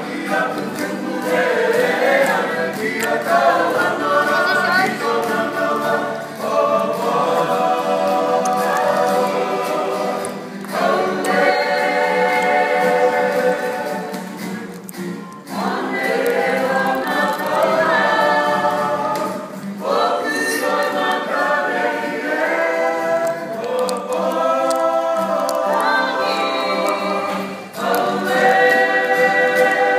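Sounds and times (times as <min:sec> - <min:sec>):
acoustic guitar strumming: 0:00.0 - 0:29.9
group singing together: 0:00.0 - 0:29.9.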